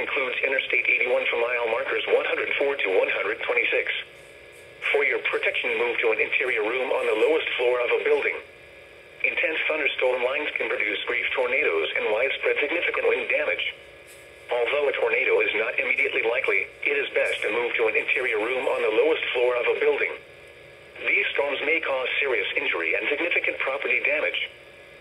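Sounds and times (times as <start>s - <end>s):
broadcast voice through small speaker: 0.0s - 4.2s, 4.8s - 8.5s, 9.2s - 13.8s, 14.5s - 20.2s, 21.0s - 24.6s.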